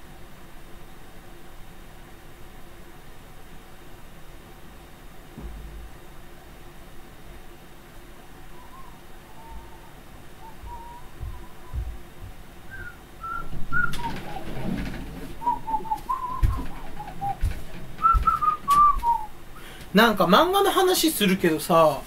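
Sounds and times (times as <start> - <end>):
person whistling a tune: 8.6 - 11.9, 12.7 - 14.2, 15.4 - 17.4, 18.0 - 19.3
soft thumps: 10.6 - 19.2.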